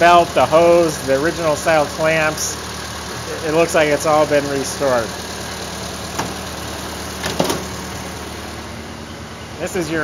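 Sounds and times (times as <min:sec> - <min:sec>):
car engine idling: 0:00.0 - 0:10.0.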